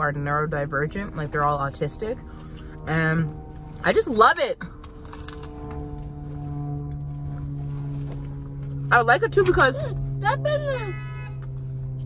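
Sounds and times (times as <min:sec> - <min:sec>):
car horn long blast: 0:09.5 - 0:11.7.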